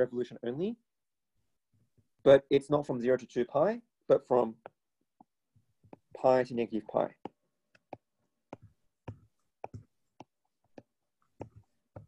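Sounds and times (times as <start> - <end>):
stylus tapping on drawing tablet: 4.6 - 6.3, 7.2 - 12.0.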